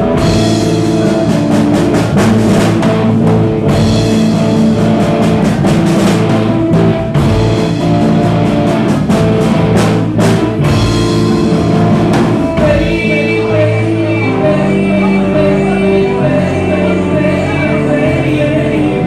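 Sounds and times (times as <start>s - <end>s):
bass guitar: 0.0s - 19.0s
drum kit: 0.0s - 19.0s
electric guitar: 0.0s - 19.0s.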